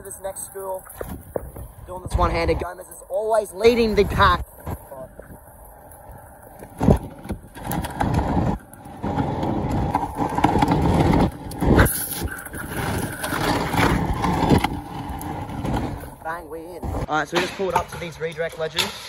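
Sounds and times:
scooter wheels rumbling on asphalt: 0:00.0 - 0:19.0
wind: 0:00.0 - 0:19.0.

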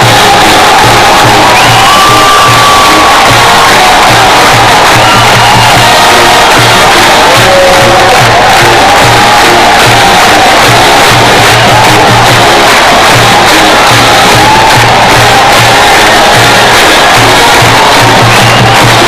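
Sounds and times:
crowd cheering and shouting: 0:00.0 - 0:19.0
drums beating: 0:00.0 - 0:19.0
marching band playing: 0:00.0 - 0:19.0.

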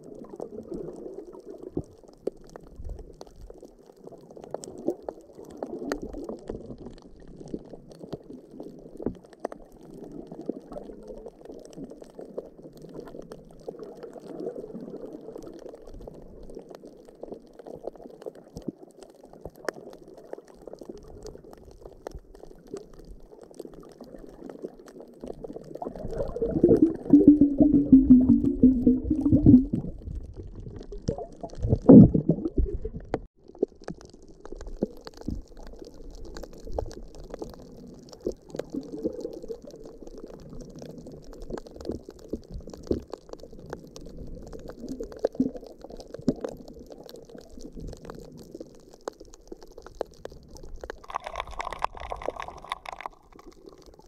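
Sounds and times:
small underwater clicks: 0:00.0 - 0:54.0
muffled underwater rumbling: 0:21.0 - 0:54.0.

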